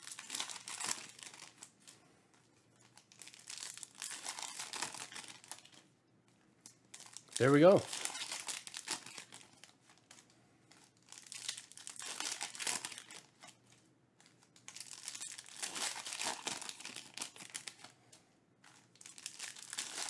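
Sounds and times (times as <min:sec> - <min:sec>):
foil wrappers tearing and crinkling: 0:00.0 - 0:01.8, 0:02.8 - 0:05.8, 0:06.9 - 0:17.9, 0:18.6 - 0:20.0.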